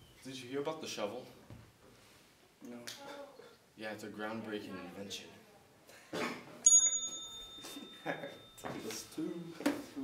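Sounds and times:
small bell ding: 0:06.6 - 0:09.2.

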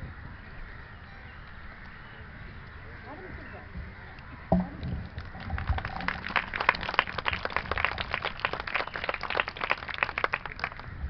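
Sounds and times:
audience applauding: 0:05.0 - 0:11.0.

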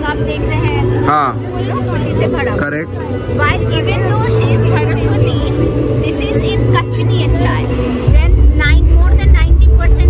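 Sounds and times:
faint background music: 0:00.0 - 0:10.0
woman talking: 0:03.4 - 0:10.0.

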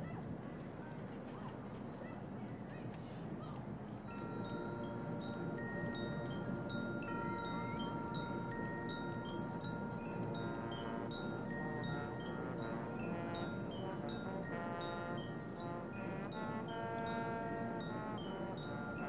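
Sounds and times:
held ringing tones: 0:04.1 - 0:19.0.

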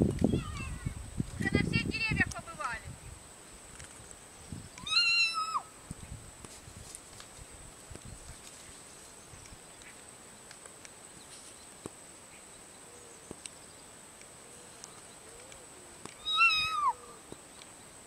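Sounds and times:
cat meowing: 0:04.8 - 0:05.7, 0:16.2 - 0:17.1.

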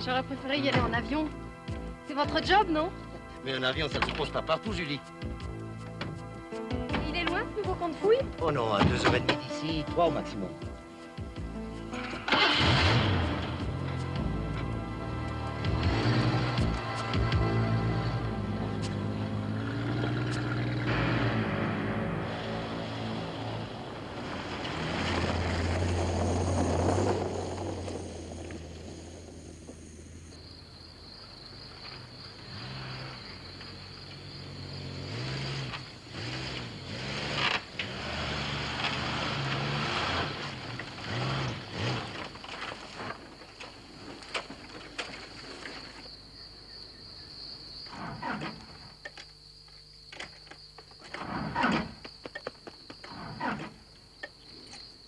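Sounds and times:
engine labouring and revving: 0:11.4 - 0:30.4, 0:31.8 - 0:43.4
truck engine driving past: 0:11.9 - 0:30.4, 0:32.3 - 0:42.4.

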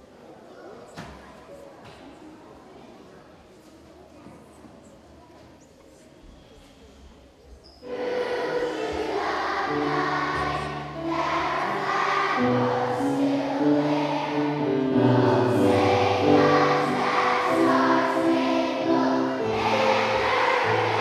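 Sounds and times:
children's choir singing: 0:07.8 - 0:21.0
musical accompaniment: 0:07.9 - 0:21.0.

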